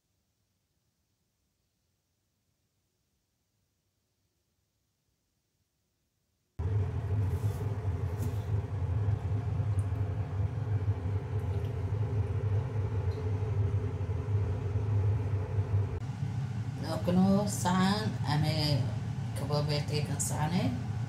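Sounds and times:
low motor hum: 6.6s - 21.0s
woman speaking: 16.8s - 20.8s.

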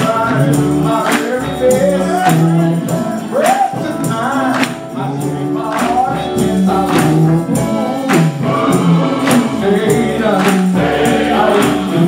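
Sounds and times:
hand claps: 0.0s - 11.0s
band accompaniment: 0.0s - 12.0s
men's gospel choir singing: 0.0s - 12.0s
tambourine: 0.0s - 12.0s.

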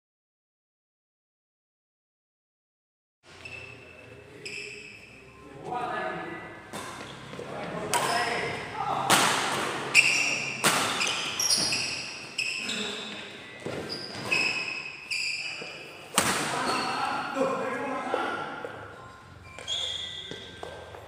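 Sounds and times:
sneakers squeaking on wooden court: 3.3s - 5.2s, 6.7s - 8.7s, 9.8s - 17.4s, 18.1s - 21.0s
racket hitting shuttlecock: 7.9s - 8.2s, 9.0s - 12.0s, 16.1s - 16.8s.

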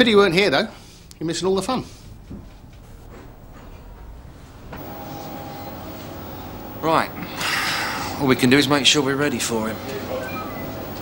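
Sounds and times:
mechanical hum: 0.0s - 11.0s
faint steady tones: 2.4s - 11.0s.

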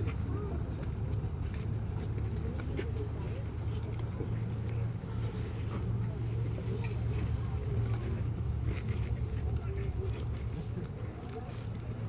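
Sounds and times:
faint voices of people: 0.0s - 12.0s.

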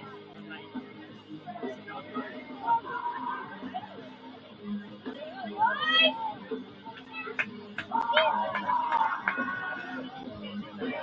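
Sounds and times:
murmur of spectators' voices: 0.0s - 11.0s.

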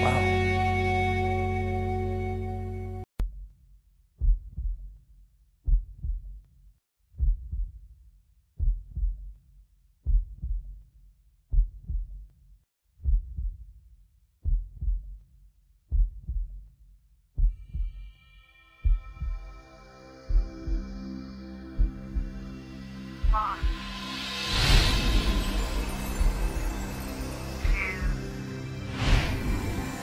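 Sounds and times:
heartbeat thumps: 4.2s - 5.0s, 5.6s - 6.4s, 7.2s - 7.8s, 8.6s - 9.4s, 10.0s - 10.8s, 11.5s - 12.3s, 13.0s - 13.7s, 14.4s - 15.2s, 15.9s - 16.7s, 17.4s - 18.1s, 18.8s - 19.6s, 20.2s - 21.1s, 21.7s - 22.5s, 23.2s - 26.8s.

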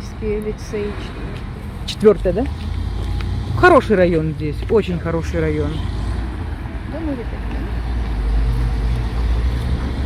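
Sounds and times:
car traffic rumble: 0.0s - 10.0s.

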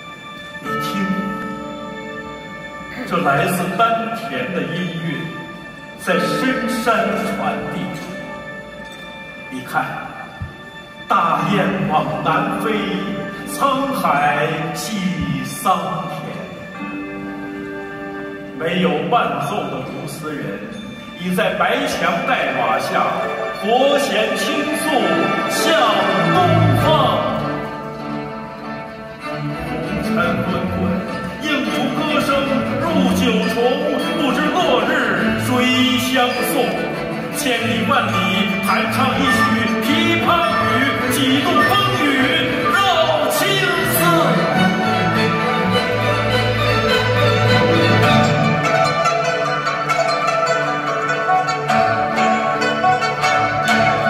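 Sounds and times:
orchestra bowed strings low notes: 0.0s - 54.0s.

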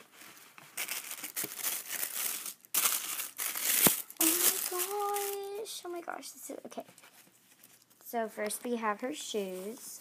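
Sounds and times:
tissue paper crinkling: 0.0s - 5.7s
girl exclaiming: 4.2s - 6.0s.

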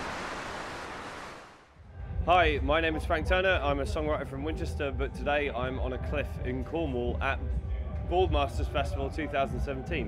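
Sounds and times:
ocean surf rushing: 0.0s - 1.8s.

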